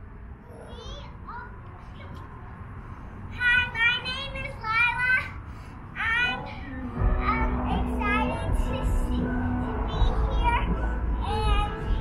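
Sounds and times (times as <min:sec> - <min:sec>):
girl singing high: 0:06.0 - 0:12.0
music with heavy bass: 0:07.0 - 0:12.0.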